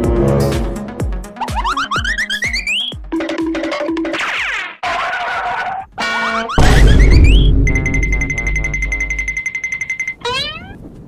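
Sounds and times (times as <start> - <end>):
background music: 0.0 - 4.2
high pulsing electronic beep trill: 1.4 - 4.0, 6.6 - 10.5.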